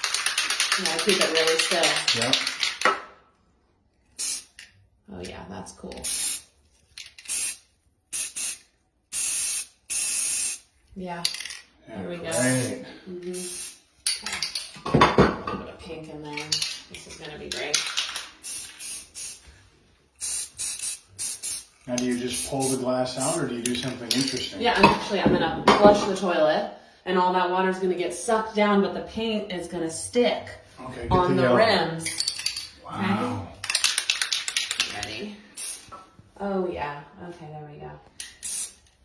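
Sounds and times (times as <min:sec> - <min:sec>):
spray paint can hissing: 0:04.2 - 0:04.6, 0:06.0 - 0:06.5, 0:07.1 - 0:10.7, 0:12.3 - 0:13.9, 0:18.4 - 0:19.4, 0:20.2 - 0:23.4, 0:35.6 - 0:36.0, 0:38.4 - 0:39.0.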